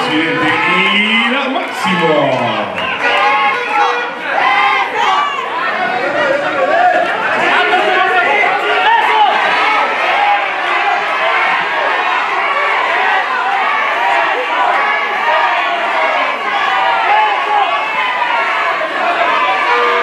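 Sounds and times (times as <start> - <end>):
crowd shouting and yelling: 0.0 - 20.0.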